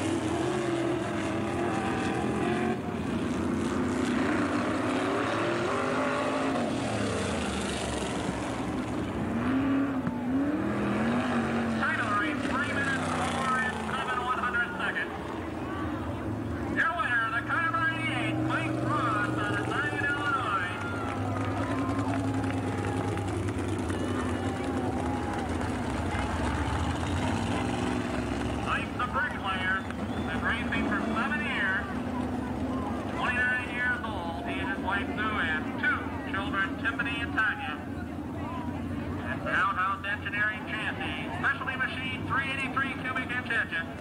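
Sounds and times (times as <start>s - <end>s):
race car engines droning: 0.0s - 44.0s
man talking: 11.8s - 15.2s, 16.7s - 20.8s, 28.6s - 32.0s, 33.1s - 37.9s, 39.3s - 43.9s.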